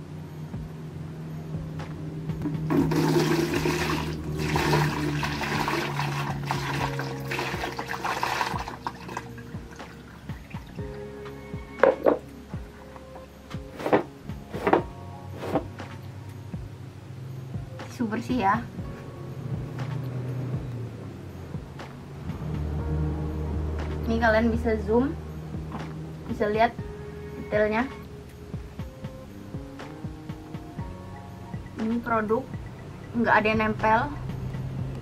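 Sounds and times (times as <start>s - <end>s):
water splashing into plastic bucket: 2.7s - 10.8s.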